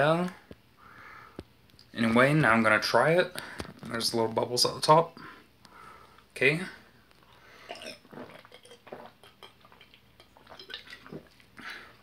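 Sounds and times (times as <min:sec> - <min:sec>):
person gulping from a bottle: 0:07.2 - 0:12.0.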